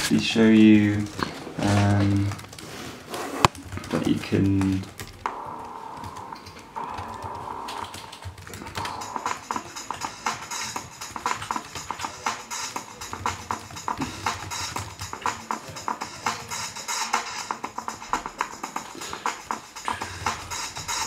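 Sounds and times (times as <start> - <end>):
stuttering electronic drum pattern: 3.9 - 21.0.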